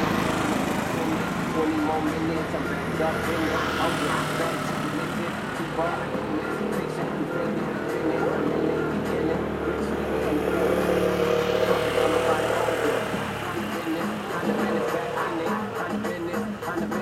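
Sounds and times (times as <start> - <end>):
motorcycle engine passing: 0.0 - 17.0
street noise: 0.0 - 17.0.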